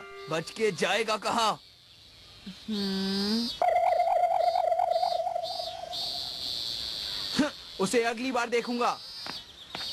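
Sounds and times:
thin high insect-like drone: 0:00.0 - 0:07.9
pulsing wavering tone: 0:03.6 - 0:05.9.

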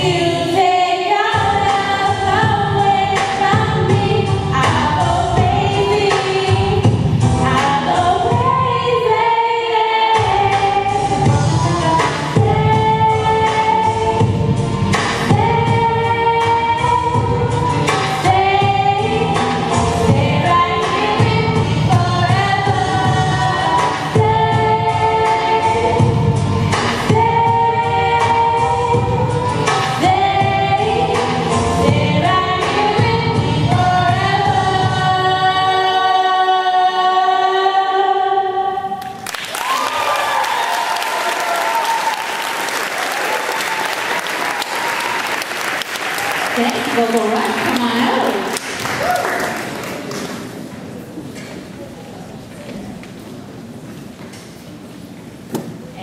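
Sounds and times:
women singing a cappella chords: 0:00.0 - 0:39.0
audience applause: 0:39.2 - 0:50.5
crowd murmur: 0:49.5 - 0:56.0
sharp thump: 0:55.5 - 0:55.8.

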